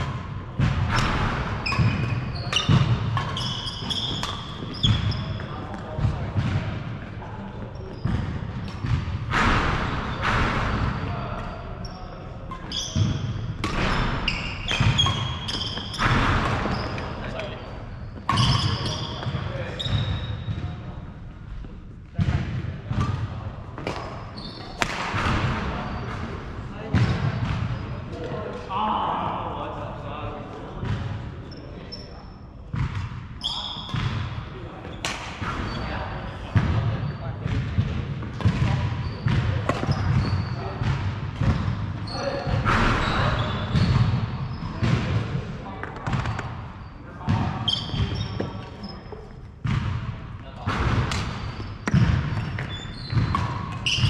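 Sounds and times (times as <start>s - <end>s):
rackets hitting shuttlecock: 0.0s - 5.1s, 12.5s - 17.5s, 23.8s - 26.3s, 39.3s - 40.2s, 50.6s - 54.0s
shoes squeaking: 0.9s - 6.2s, 7.4s - 9.0s, 10.1s - 20.7s, 23.8s - 25.0s, 25.8s - 26.4s, 33.4s - 34.0s, 38.4s - 44.8s, 45.8s - 49.6s, 51.1s - 54.0s.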